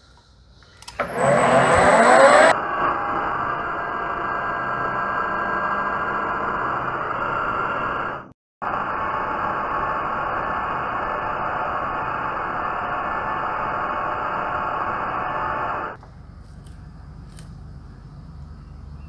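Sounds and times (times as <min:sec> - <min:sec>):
metal lathe whirring: 0:00.8 - 0:02.6.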